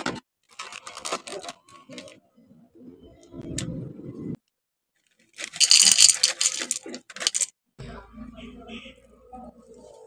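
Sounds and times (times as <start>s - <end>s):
bag rustling: 5.4s - 7.5s
cereal clattering into ceramic bowl: 5.4s - 7.5s.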